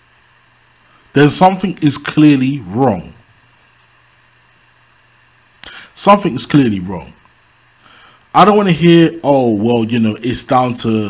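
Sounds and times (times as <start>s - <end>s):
low hum with light hiss: 0.0s - 11.0s
man talking: 1.1s - 3.2s, 5.6s - 7.2s, 8.3s - 11.0s.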